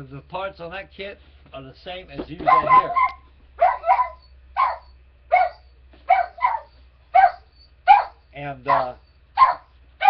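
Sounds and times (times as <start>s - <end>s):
dog barking: 2.4s - 9.8s.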